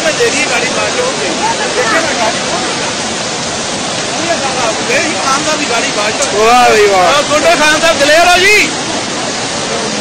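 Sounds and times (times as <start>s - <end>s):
floodwater rushing: 0.0s - 10.0s.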